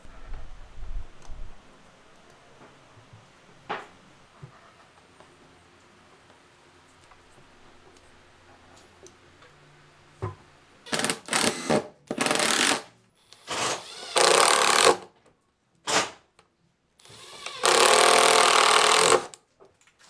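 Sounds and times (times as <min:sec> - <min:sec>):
impact driver hammering screws: 0:10.9 - 0:15.1, 0:17.1 - 0:19.4.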